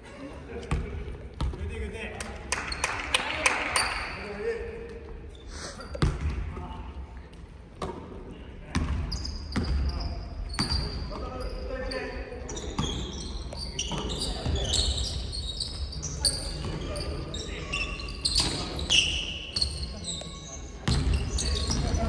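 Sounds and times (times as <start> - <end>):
sneakers squeaking on floor: 3.7 - 4.2, 7.8 - 22.0.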